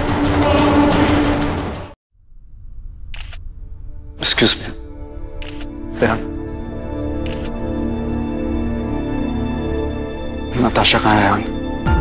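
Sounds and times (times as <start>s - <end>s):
camera shutter clicking: 3.2s - 3.4s, 5.4s - 5.7s, 7.2s - 7.6s.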